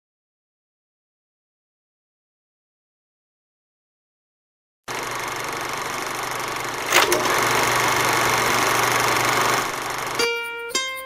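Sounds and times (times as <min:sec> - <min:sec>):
sharp click: 0:06.9 - 0:07.3
plucked-string music: 0:09.7 - 0:11.0.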